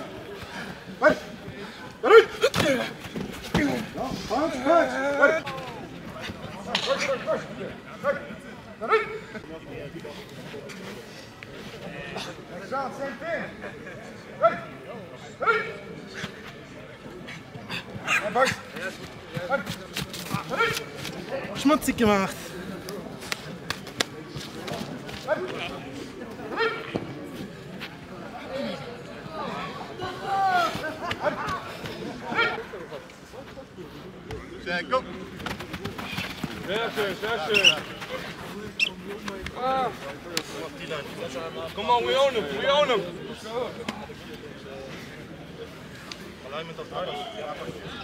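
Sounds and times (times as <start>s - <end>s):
voices calling and talking: 0.0s - 48.0s.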